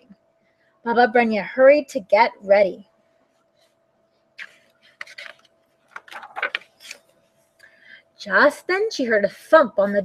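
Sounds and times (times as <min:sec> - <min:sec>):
book pages turning: 0:04.4 - 0:07.2.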